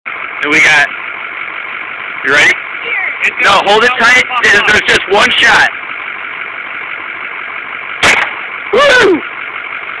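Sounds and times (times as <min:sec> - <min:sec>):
handgun shot: 0:08.0 - 0:08.4.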